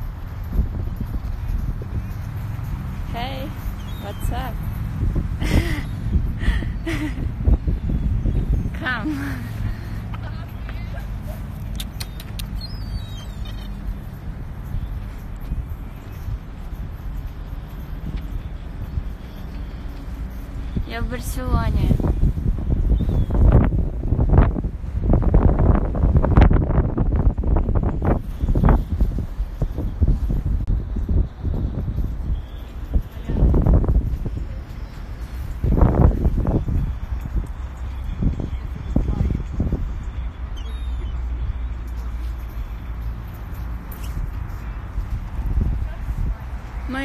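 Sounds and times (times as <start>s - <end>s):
wind buffeting microphone: 0.0s - 47.0s
woman speaking: 3.1s - 4.6s, 8.8s - 9.5s, 20.8s - 22.0s.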